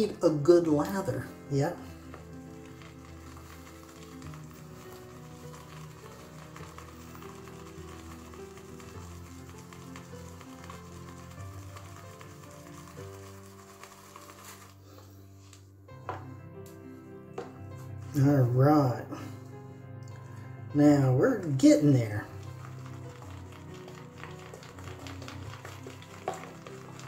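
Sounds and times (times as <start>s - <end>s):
shaving brush whipping lather: 0.0s - 14.9s, 20.1s - 27.0s
quiet background music: 0.0s - 27.0s.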